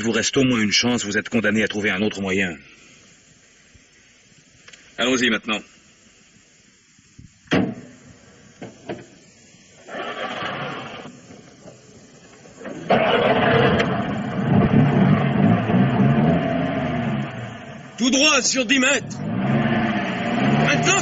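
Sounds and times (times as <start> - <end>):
faint clicks: 4.6 - 4.9
sharp knock: 7.5 - 7.9
car engine starting and running: 9.8 - 11.6, 12.2 - 21.0.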